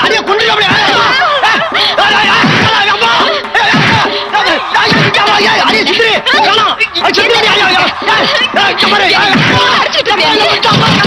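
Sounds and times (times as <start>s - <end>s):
voices laughing and crying out: 0.4s - 11.0s.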